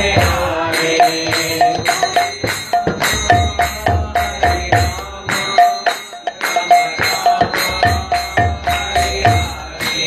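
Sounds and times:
hand drum fast rhythm: 0:00.0 - 0:10.0
high metallic ringing: 0:00.8 - 0:10.0.

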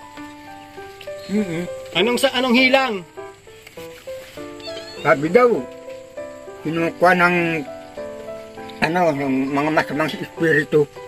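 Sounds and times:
soft background music: 0:00.0 - 0:11.0
high warbling animal call: 0:04.6 - 0:05.5.

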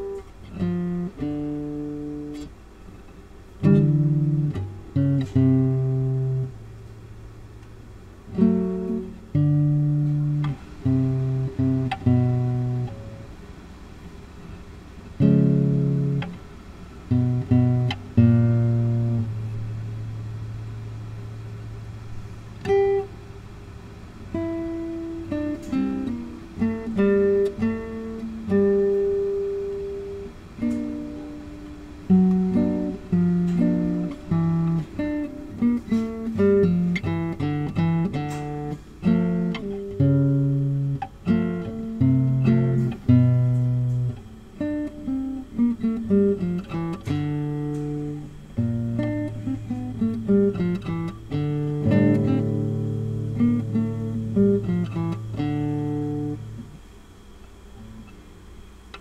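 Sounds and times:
classical guitar fingerstyle: 0:00.0 - 0:58.2.

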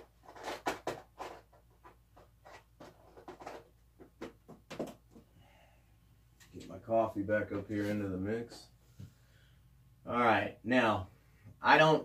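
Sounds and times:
hands rummaging in plastic case: 0:00.0 - 0:05.3.

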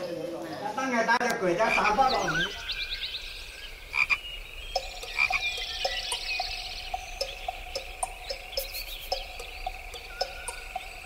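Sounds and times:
animal calls: 0:01.5 - 0:11.0.

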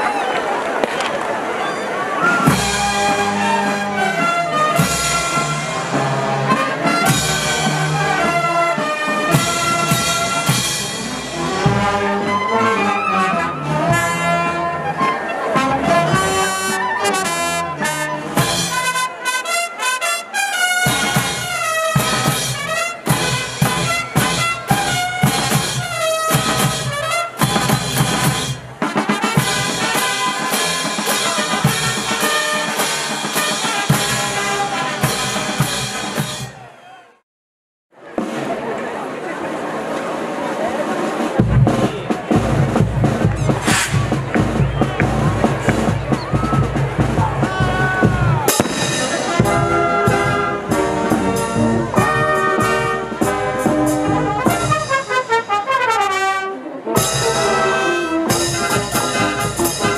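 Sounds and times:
brass band playing: 0:00.0 - 0:36.7, 0:40.5 - 0:59.9
snare drum: 0:02.4 - 0:11.8, 0:20.7 - 0:36.6, 0:41.4 - 0:56.1, 0:57.0 - 0:59.9.

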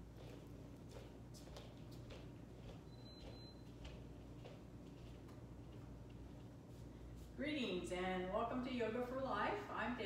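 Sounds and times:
footsteps on wooden floor: 0:00.0 - 0:05.8
low room hum: 0:00.0 - 0:10.0.

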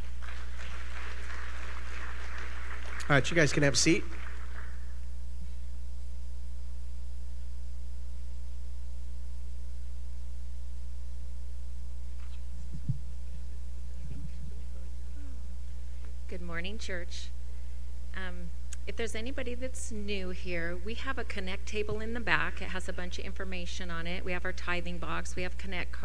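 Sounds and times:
crowd applauding: 0:00.0 - 0:05.0
electrical hum from speakers: 0:00.0 - 0:26.0
microphone handling thumps: 0:12.0 - 0:14.6.

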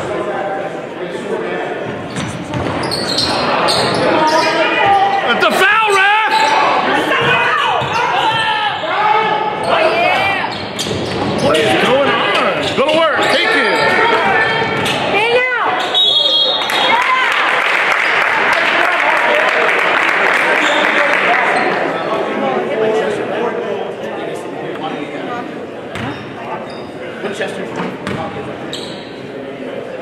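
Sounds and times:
sneakers squeaking on floor: 0:01.8 - 0:05.3, 0:06.3 - 0:09.0, 0:09.6 - 0:16.6, 0:20.6 - 0:21.8, 0:25.9 - 0:27.1, 0:27.7 - 0:29.3
basketball bouncing: 0:02.2 - 0:02.9
people shouting: 0:04.1 - 0:10.5.

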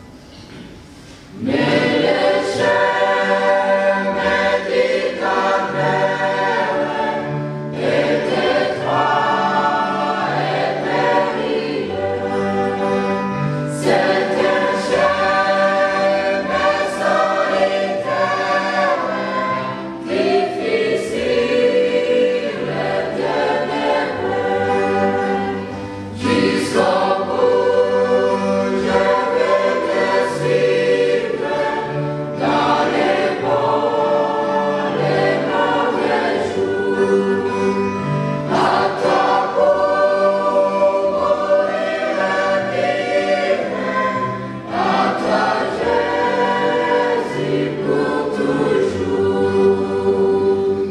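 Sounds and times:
mixed choir singing hymn: 0:00.0 - 0:50.9.

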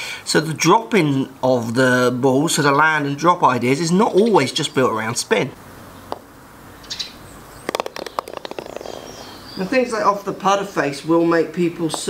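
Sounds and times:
small birds chirping: 0:03.9 - 0:12.0.

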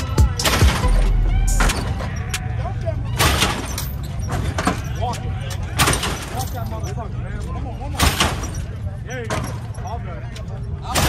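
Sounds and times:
truck landing with loud clank: 0:03.2 - 0:05.0, 0:05.7 - 0:06.6, 0:08.0 - 0:09.8.

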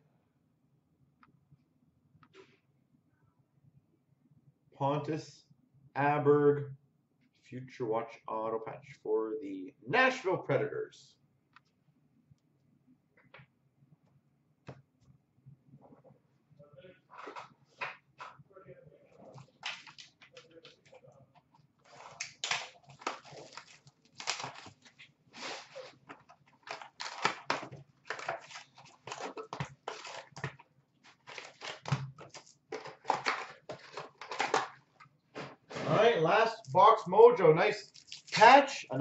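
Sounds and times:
foil packs crinkling and tearing: 0:21.9 - 0:34.8, 0:37.8 - 0:38.6.

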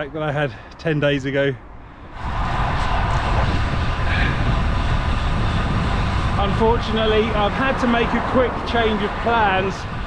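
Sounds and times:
wind roaring over microphone: 0:00.9 - 0:10.0.

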